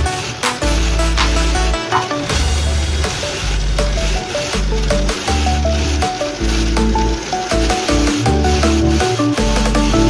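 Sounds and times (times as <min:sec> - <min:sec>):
instrumental music with pulsing bass: 0:00.0 - 0:10.0.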